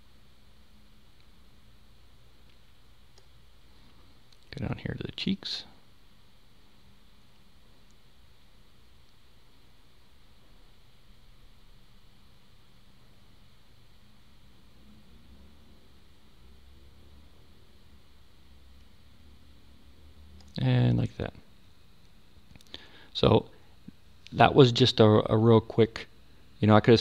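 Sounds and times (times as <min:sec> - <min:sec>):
low hum: 0:00.0 - 0:27.0
microphone hiss: 0:00.0 - 0:27.0.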